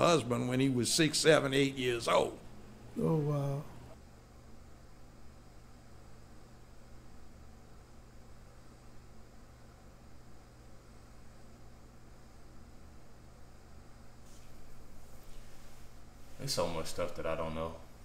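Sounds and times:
faint background hiss: 0.0 - 18.0.

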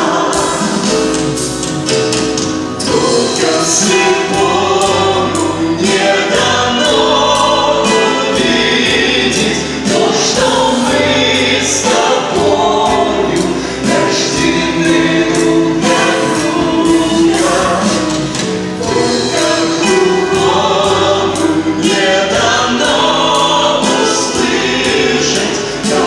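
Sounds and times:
gospel choir singing: 0.0 - 26.0
instrumental accompaniment: 0.0 - 26.0.

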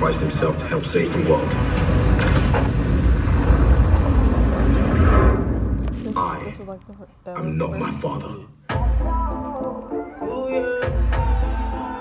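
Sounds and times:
dense noisy roar: 0.0 - 6.6
deep rumble: 0.0 - 7.4.

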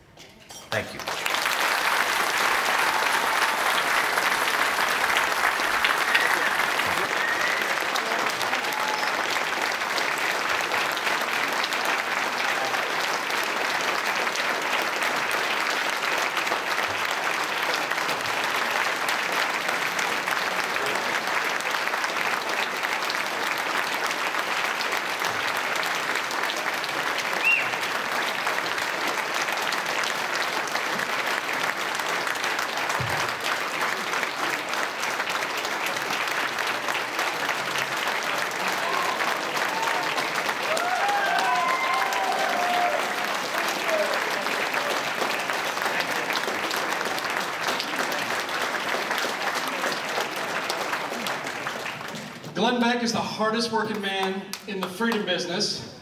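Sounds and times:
large audience applauding: 0.8 - 52.7, 53.8 - 55.4.

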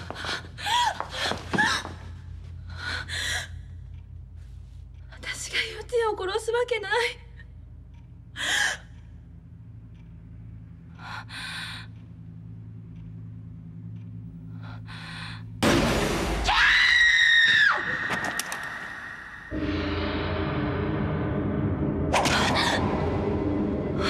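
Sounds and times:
low ominous music drone: 0.0 - 24.0.

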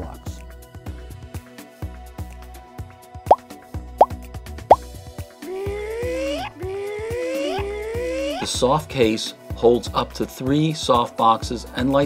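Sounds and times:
background music with beat: 0.4 - 9.6.

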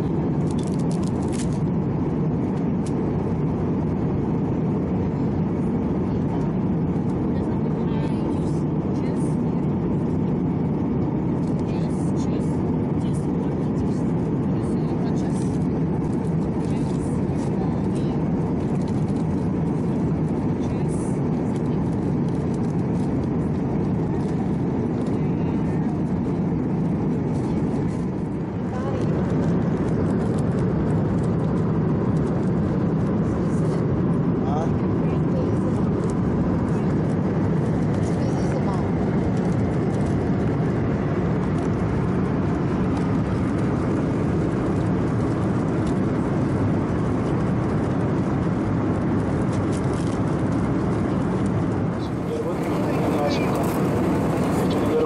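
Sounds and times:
airliner cabin roar: 0.0 - 55.0
people talking: 7.3 - 9.8, 11.4 - 15.7, 16.6 - 18.3, 20.6 - 21.8, 28.7 - 29.4, 34.4 - 35.9, 38.0 - 38.9, 52.0 - 55.0.

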